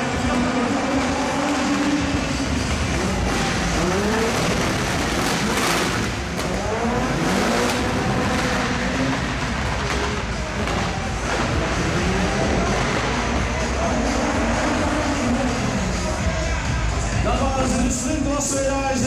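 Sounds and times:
racing car engines revving: 0:00.0 - 0:19.0.

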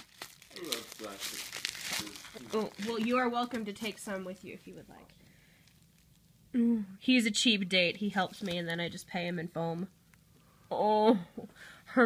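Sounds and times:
bubble wrap crinkling: 0:00.0 - 0:06.4, 0:07.8 - 0:10.2.

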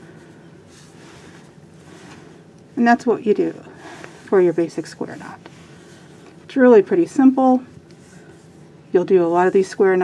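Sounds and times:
rustle of cord handled on table: 0:00.6 - 0:02.7.

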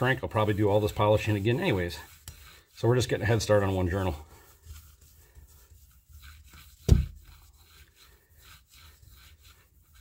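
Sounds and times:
cord rubbing on rag: 0:00.0 - 0:10.0.

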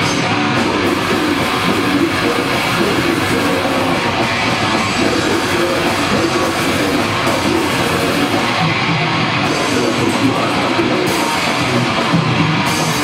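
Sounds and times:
death metal band playing live: 0:00.0 - 0:13.0
distorted electric guitars: 0:00.0 - 0:13.0
drums: 0:00.0 - 0:13.0.

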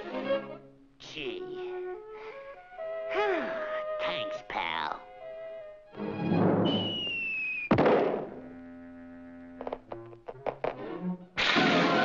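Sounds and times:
loud crash: 0:06.4 - 0:08.4, 0:11.4 - 0:12.0
falling whistle: 0:06.6 - 0:07.8.

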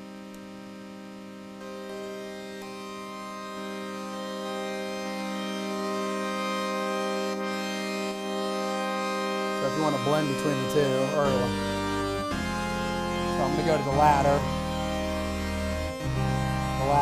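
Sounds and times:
buzzy synthesizer tone: 0:00.0 - 0:17.0.

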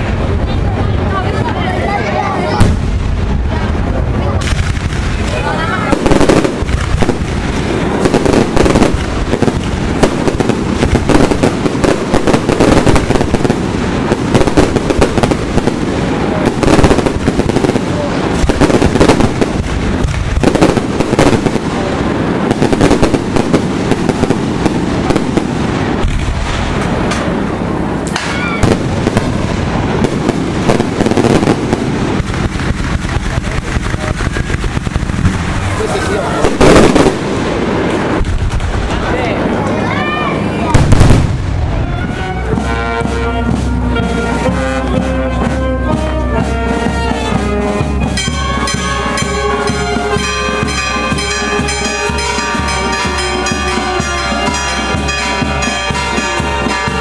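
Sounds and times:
fireworks bursting and crackling: 0:00.0 - 0:57.0.

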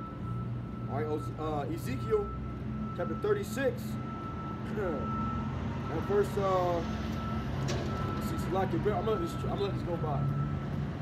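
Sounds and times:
heavy vehicle engine humming: 0:00.0 - 0:11.0.

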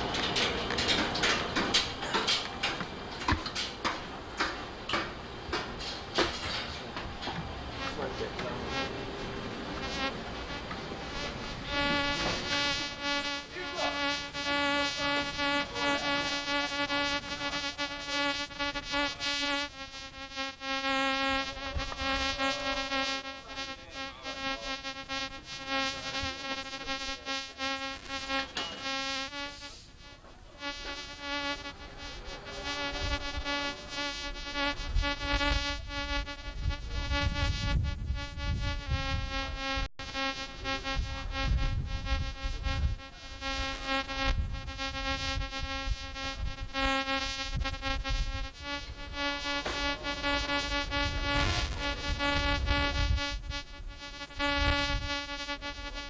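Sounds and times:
radar electrical buzz: 0:00.0 - 0:56.0.

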